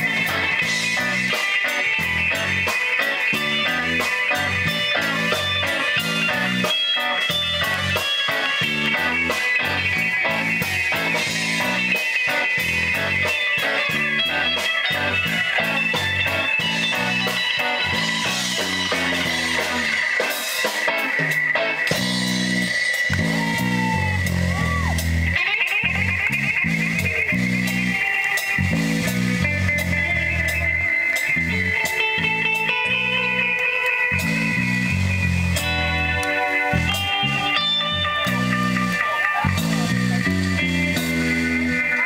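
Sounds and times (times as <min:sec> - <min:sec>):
drum kit: 0:00.0 - 0:42.0
electric bass: 0:00.0 - 0:42.0
electric guitar lines: 0:00.0 - 0:42.0.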